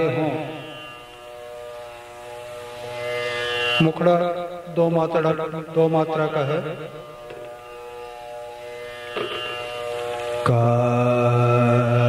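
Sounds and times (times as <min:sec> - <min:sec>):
tanpura drone: 0:00.0 - 0:12.0.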